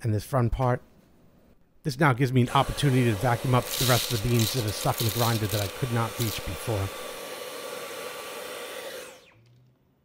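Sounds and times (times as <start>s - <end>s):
handheld vacuum cleaner running: 2.4s - 9.5s.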